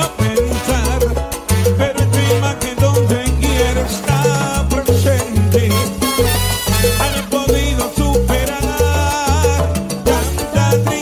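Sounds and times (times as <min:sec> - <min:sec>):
salsa band music: 0:00.0 - 0:11.0.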